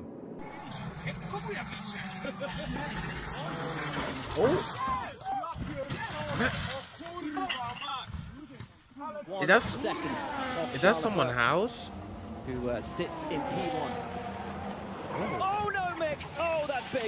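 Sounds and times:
car engine running: 0:00.4 - 0:04.9, 0:09.4 - 0:16.8
people shouting excitedly: 0:04.3 - 0:06.1, 0:15.1 - 0:16.0.

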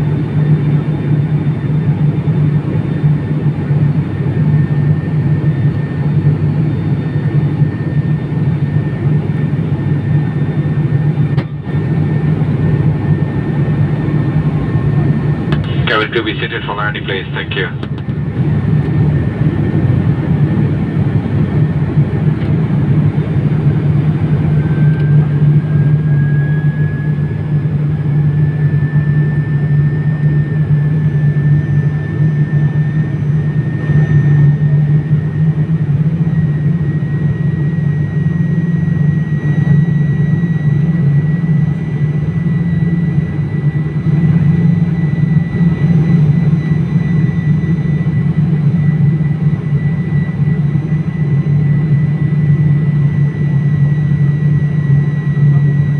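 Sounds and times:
loud low propeller drone: 0:00.0 - 0:55.9.

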